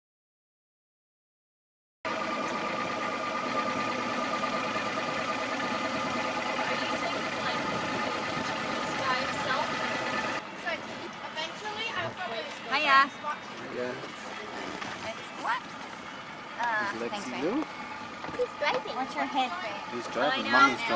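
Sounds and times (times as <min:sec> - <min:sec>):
motorboat engine idling: 0:02.1 - 0:20.9
people talking: 0:06.6 - 0:09.8, 0:18.3 - 0:20.9.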